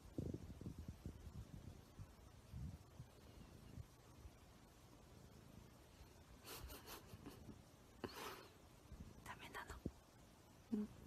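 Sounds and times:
person whispering: 9.2s - 9.9s.

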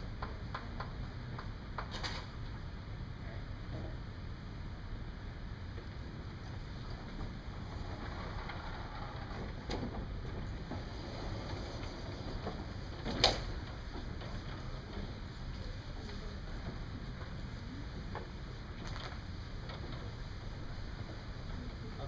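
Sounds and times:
sliding chalkboard panels rumbling: 5.8s - 22.0s.

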